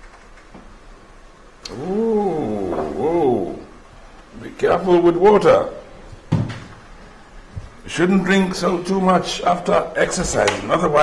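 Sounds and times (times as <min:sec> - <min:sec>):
man's wordless vocal exclamation: 0:01.6 - 0:03.8.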